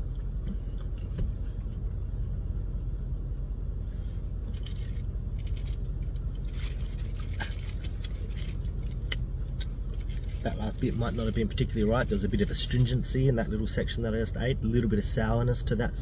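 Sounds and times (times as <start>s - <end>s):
car cabin rumble: 0.0s - 16.0s.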